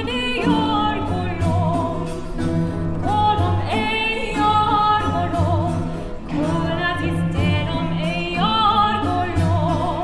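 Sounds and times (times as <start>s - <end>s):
woman singing: 0.0s - 2.4s, 3.0s - 10.0s.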